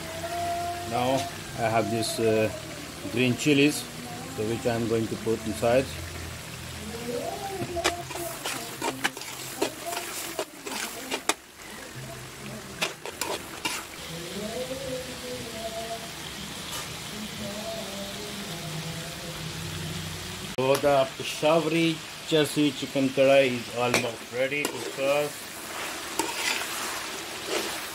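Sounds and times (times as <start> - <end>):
food sizzling in a wok: 0.0 - 27.9
ladle scraping a wok: 7.2 - 14.0, 23.9 - 27.9.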